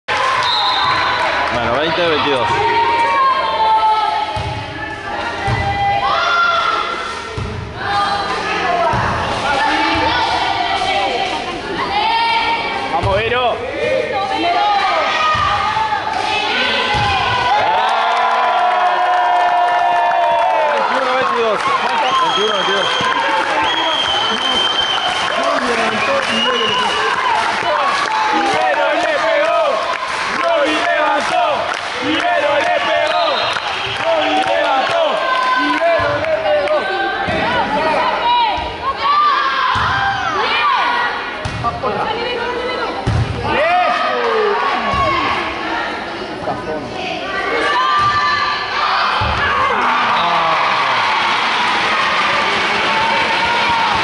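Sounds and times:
crowd clapping and shouting: 0:00.0 - 0:03.4, 0:15.9 - 0:37.6, 0:48.6 - 0:54.0
spectators chattering: 0:00.1 - 0:54.0
ball bouncing on court floor: 0:41.4 - 0:41.8.

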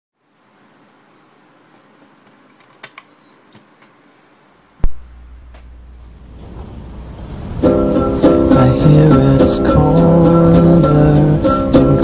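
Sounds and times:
cassette tape hiss: 0:00.2 - 0:12.0
small clicks: 0:02.3 - 0:04.0.

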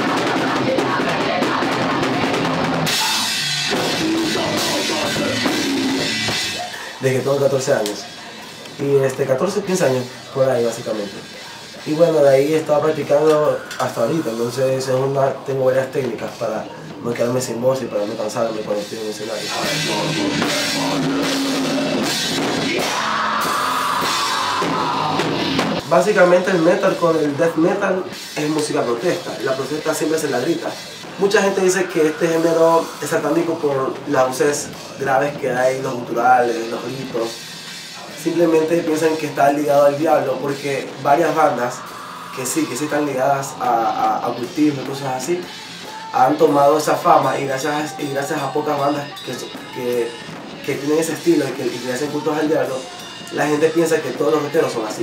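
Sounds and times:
screamed vocals: 0:00.0 - 0:07.0, 0:19.8 - 0:25.8, 0:31.1 - 0:33.9, 0:41.0 - 0:43.6, 0:45.4 - 0:46.4
electric guitars: 0:00.0 - 0:09.2, 0:12.6 - 0:17.1, 0:18.7 - 0:35.4, 0:36.6 - 0:55.0
metal band playing: 0:00.0 - 0:16.4, 0:17.4 - 0:55.0
fast drumming: 0:00.0 - 0:16.5, 0:17.2 - 0:55.0
cymbal crash: 0:02.4 - 0:07.0, 0:29.3 - 0:34.1, 0:39.9 - 0:44.0.

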